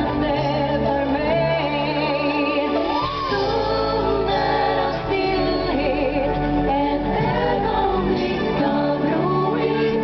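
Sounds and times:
live band playing: 0:00.0 - 0:10.0
voices singing held notes: 0:00.0 - 0:10.0.

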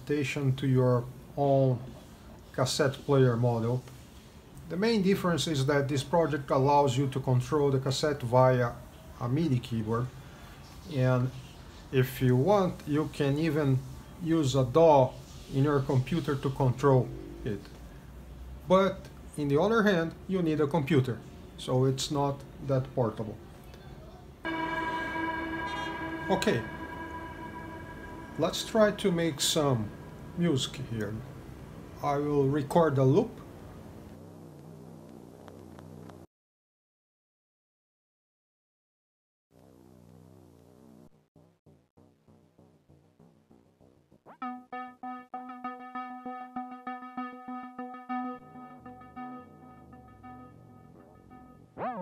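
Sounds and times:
sustained bell-like synthesizer note: 0:16.0 - 0:18.1, 0:24.5 - 0:31.7, 0:44.4 - 0:51.9.

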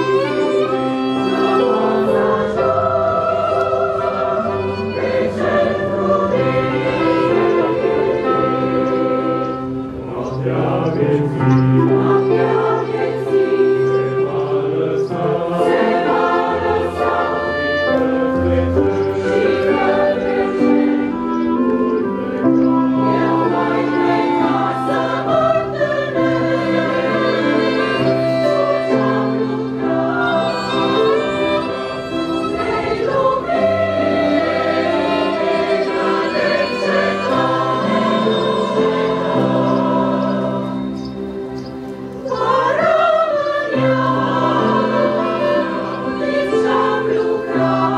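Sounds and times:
choir singing a hymn: 0:00.0 - 0:47.9.

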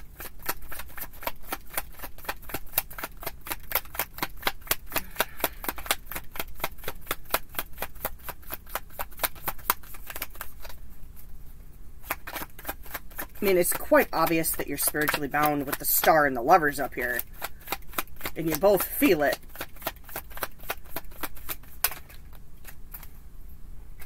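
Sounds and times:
cards being shuffled: 0:00.0 - 0:11.3, 0:12.0 - 0:23.2.

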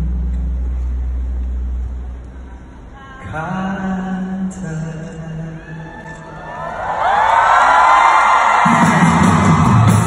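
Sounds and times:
crowd screaming and cheering: 0:05.2 - 0:10.0
band bass and drums: 0:08.6 - 0:10.0.

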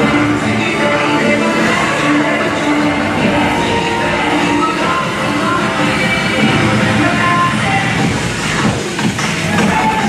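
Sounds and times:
voice sample: 0:00.0 - 0:08.8
cheerleading music over speakers: 0:00.0 - 0:10.0.

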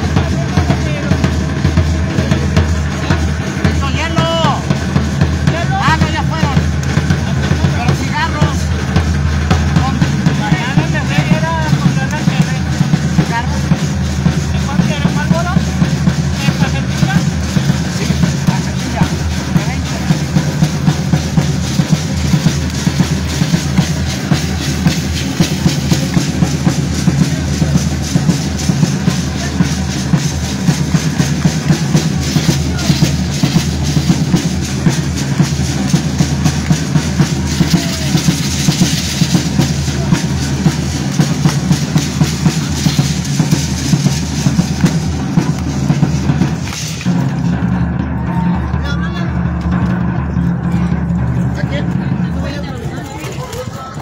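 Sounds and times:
bass drum and side drum rhythm: 0:00.0 - 0:54.0.

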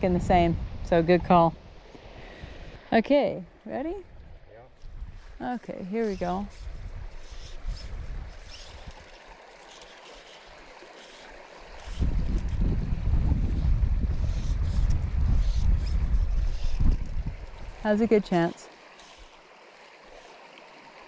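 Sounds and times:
wind buffeting microphone: 0:00.0 - 0:03.0, 0:03.7 - 0:09.2, 0:11.7 - 0:18.6
faint stream rushing: 0:00.0 - 0:21.0.

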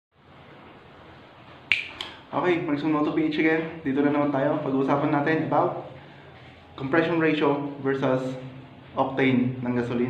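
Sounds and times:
faint room hiss: 0:00.2 - 0:10.0
finger snap: 0:01.7 - 0:02.2.

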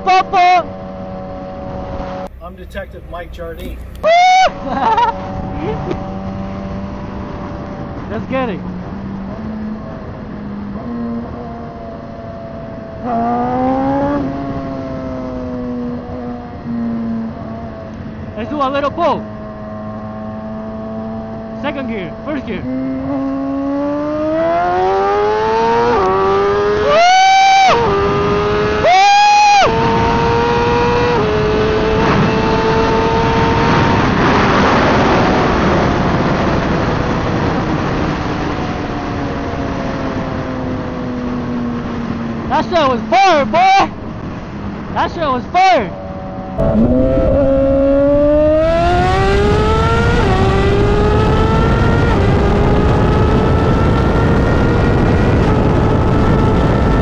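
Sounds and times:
wind rushing over microphone: 0:00.0 - 0:57.0
motorcycle engine revving through gears: 0:00.6 - 0:02.5, 0:04.6 - 0:43.4, 0:45.9 - 0:57.0.

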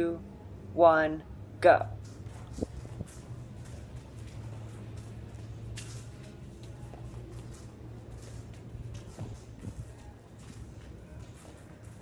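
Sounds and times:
shoes scuffing on concrete: 0:02.0 - 0:12.0.

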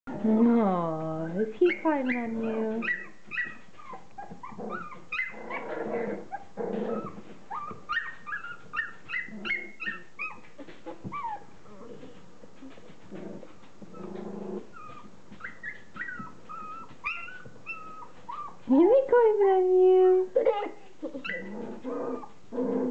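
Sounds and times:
puppies whimpering and yipping: 0:01.3 - 0:18.7, 0:20.5 - 0:22.9.

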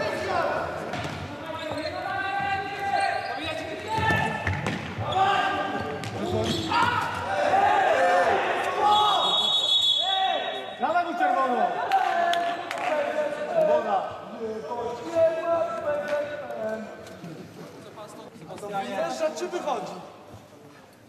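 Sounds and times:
shoes squeaking: 0:01.5 - 0:07.0
players shouting: 0:05.0 - 0:10.7.

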